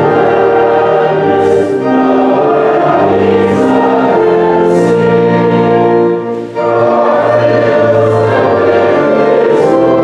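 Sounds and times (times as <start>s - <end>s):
congregation singing a hymn: 0.0s - 10.0s.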